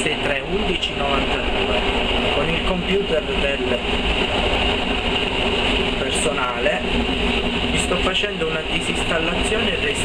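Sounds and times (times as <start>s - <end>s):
diesel railcar rumble and hiss: 0.0s - 10.0s.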